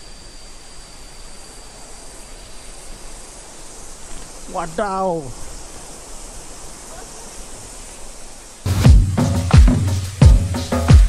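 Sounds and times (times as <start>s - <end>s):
insects singing: 0.0s - 11.0s
waterfall rushing: 4.1s - 10.2s.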